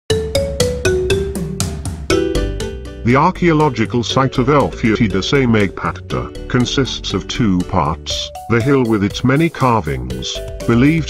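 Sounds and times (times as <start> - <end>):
low bass: 1.6 - 11.0.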